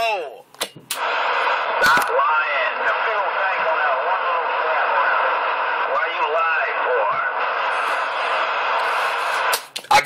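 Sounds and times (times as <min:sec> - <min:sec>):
radio static hiss: 0:00.9 - 0:10.0.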